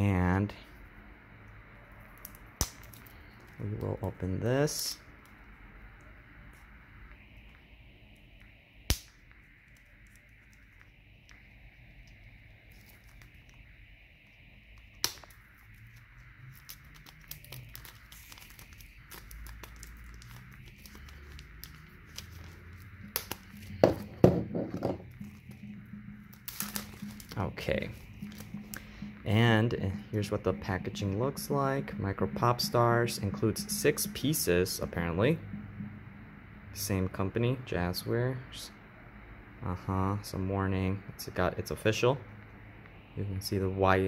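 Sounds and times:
plastic crinkling: 9.6s - 13.6s, 14.9s - 24.1s, 26.4s - 28.8s
knife cutting plastic wrap: 26.5s - 27.4s.

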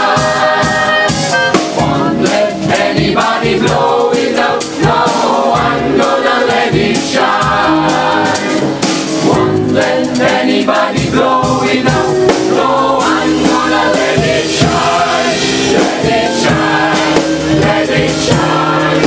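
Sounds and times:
gospel choir singing: 0.0s - 19.0s.

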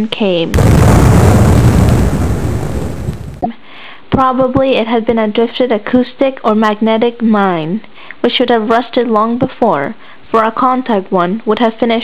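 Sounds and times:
explosion with deep rumble: 0.6s - 3.4s.

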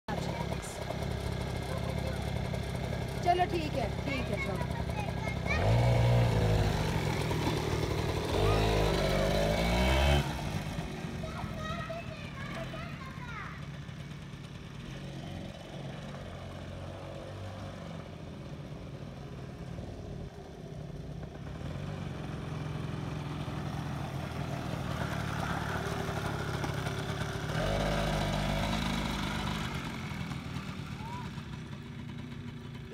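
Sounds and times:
quad bike engine running: 0.1s - 32.9s.

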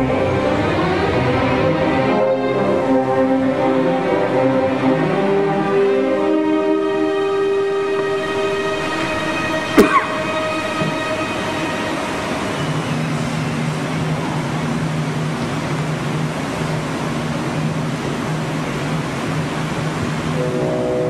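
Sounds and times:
orchestra playing rushing passage: 0.0s - 13.7s
low held note: 6.0s - 14.4s, 20.3s - 21.0s.

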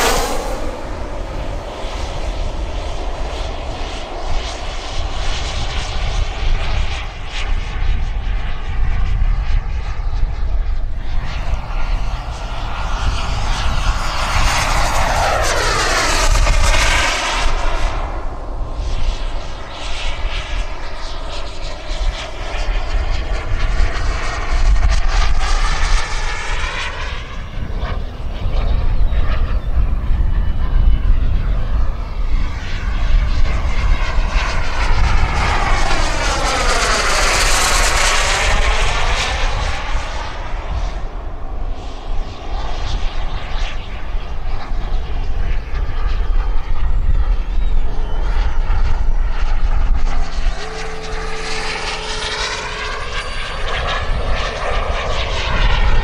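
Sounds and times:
model jet turbine whine: 0.0s - 56.0s
wind rumble on microphone: 0.0s - 56.0s.

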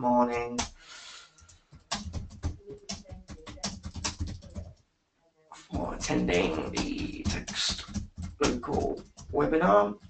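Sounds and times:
computer keyboard typing: 1.4s - 4.8s, 5.7s - 10.0s.

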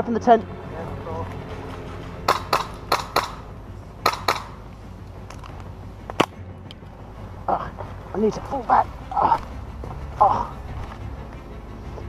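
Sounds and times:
steady low hum: 0.0s - 12.0s
airsoft gunfire cracks: 2.3s - 3.4s, 4.0s - 4.6s.

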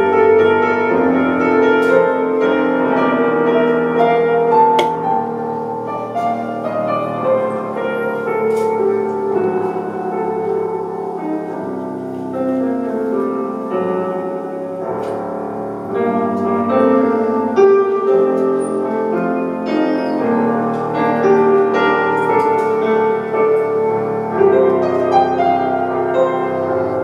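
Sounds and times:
electric piano playing: 0.0s - 27.0s.

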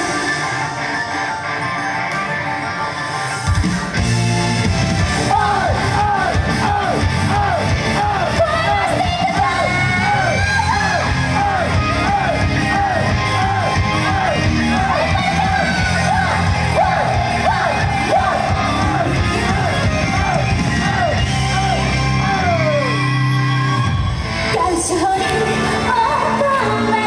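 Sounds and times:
upbeat pop song over pa: 0.0s - 27.0s
audience yelling along: 4.9s - 27.0s
woman singing: 24.5s - 27.0s.

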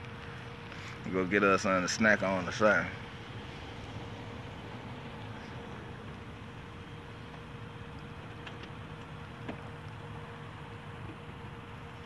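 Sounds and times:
constant hum: 0.0s - 12.0s.

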